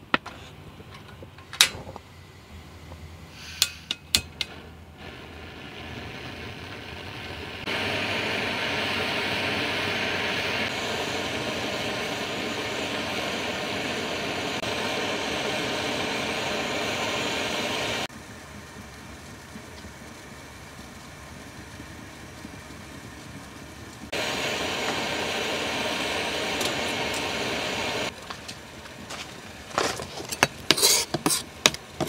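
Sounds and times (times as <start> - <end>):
gas burner roaring: 0.0 - 32.0.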